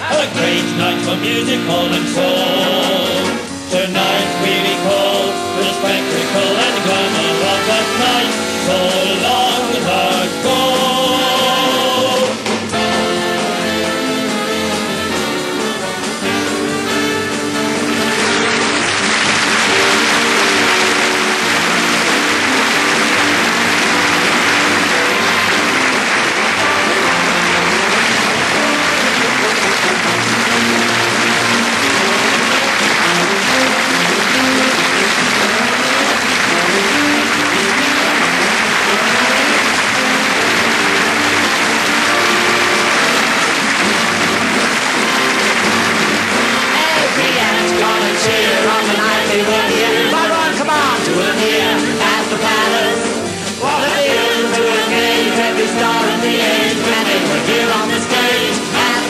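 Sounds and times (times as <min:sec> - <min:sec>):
orchestra music: 0:00.0 - 0:59.0
audience applause: 0:04.0 - 0:59.0.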